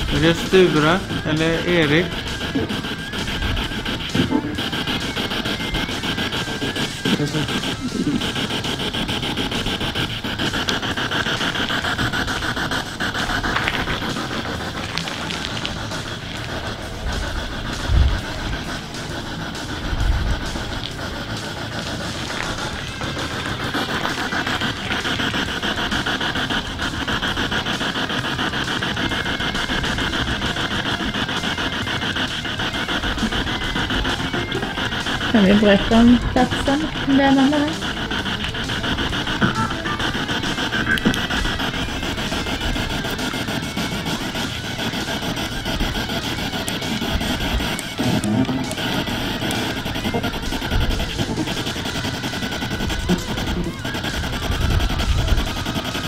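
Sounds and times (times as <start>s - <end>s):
radio static hiss: 0.0s - 56.0s
snatches of broadcast audio: 0.0s - 56.0s.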